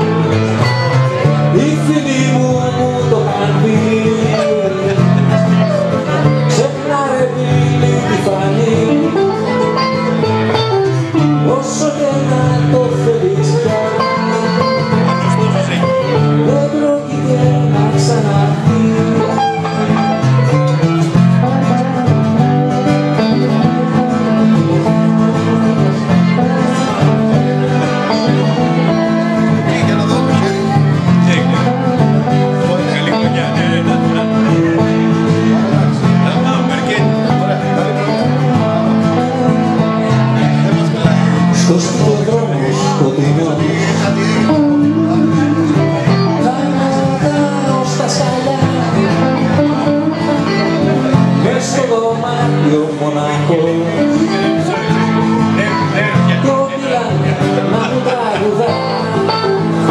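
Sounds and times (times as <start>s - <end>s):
two guitars playing: 0.0s - 59.9s.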